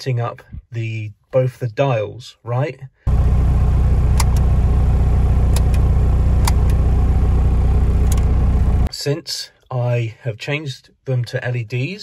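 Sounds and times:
pickup engine idling: 3.1 - 8.9.

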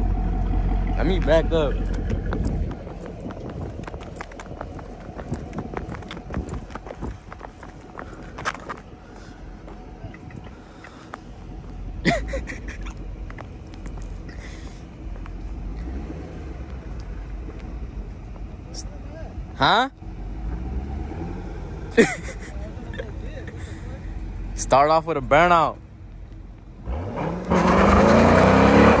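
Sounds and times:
distant car engine rumble: 0.0 - 29.0.

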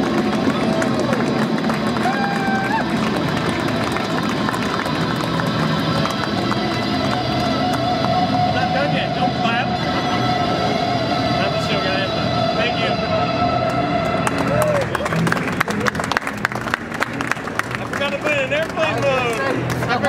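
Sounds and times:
overdriven electric guitar: 0.0 - 18.2
crowd chatter: 0.0 - 20.0.

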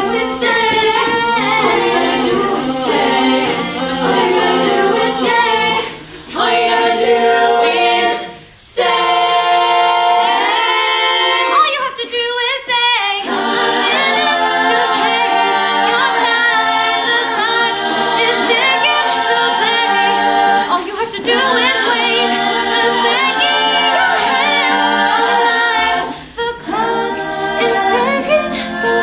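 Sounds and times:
vocal percussion: 0.0 - 29.0
women singing a cappella: 0.0 - 29.0.

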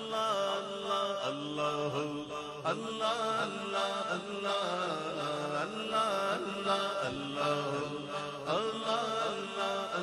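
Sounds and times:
man singing into a microphone: 0.0 - 10.0.

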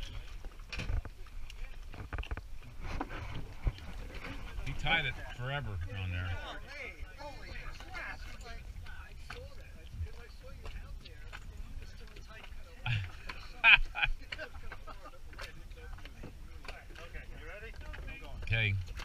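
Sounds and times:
people talking indistinctly: 3.6 - 19.0.

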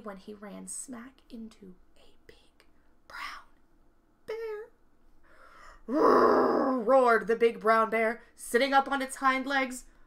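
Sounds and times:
woman whispering: 0.4 - 3.6.

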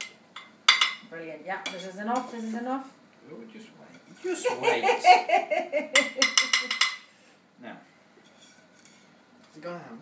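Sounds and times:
laughter: 4.4 - 6.8
knife clinking on a plate: 6.0 - 7.0.

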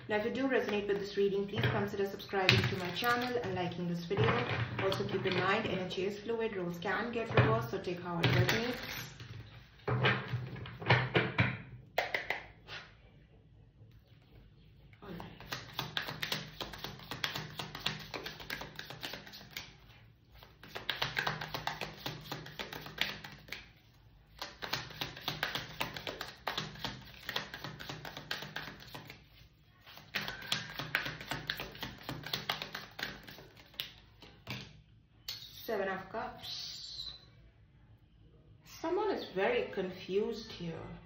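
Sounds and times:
cards being shuffled: 15.2 - 19.7, 20.4 - 23.7, 24.4 - 34.6.

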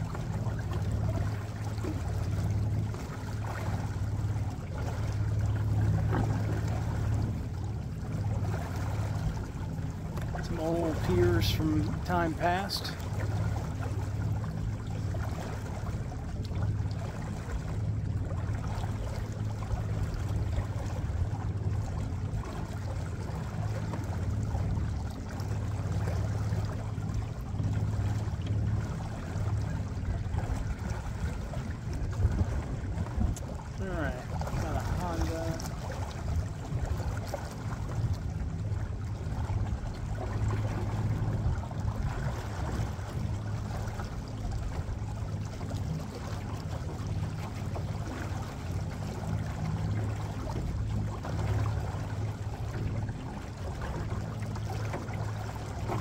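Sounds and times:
small boat motor humming: 0.0 - 56.0
water wash: 0.0 - 56.0.

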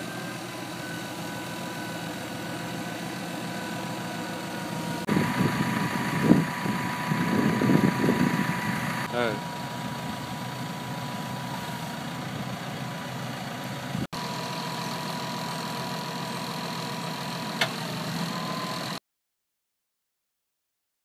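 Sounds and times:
tractor engine idling: 0.0 - 19.0.

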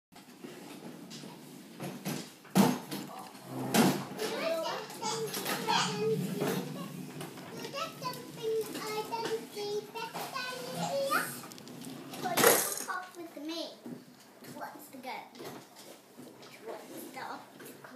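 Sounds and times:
children chattering: 4.1 - 13.8.

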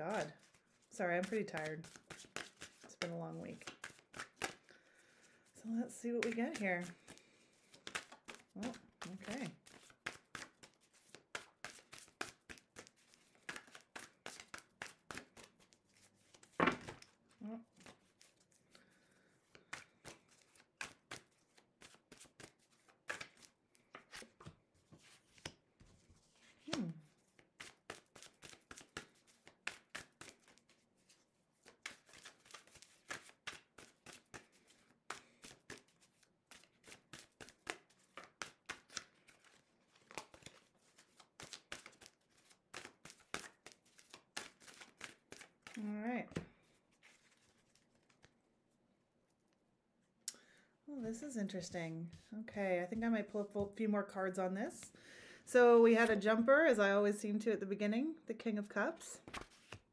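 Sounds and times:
cards being shuffled: 0.2 - 4.7, 6.1 - 48.4, 59.2 - 59.9.

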